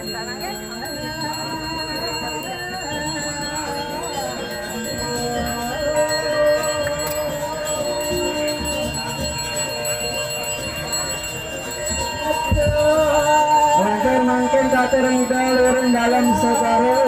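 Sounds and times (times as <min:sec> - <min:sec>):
chanted singing: 0:00.0 - 0:17.0
hand bell ringing: 0:00.0 - 0:17.0.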